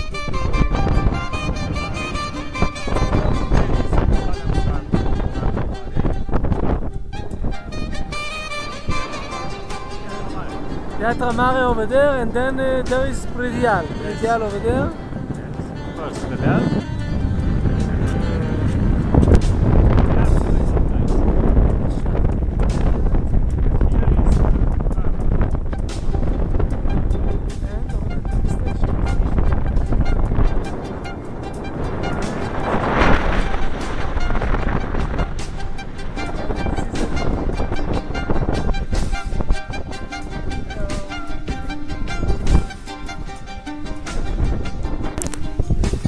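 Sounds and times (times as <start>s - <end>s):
music: 0.0s - 46.0s
wind buffeting microphone: 0.0s - 46.0s.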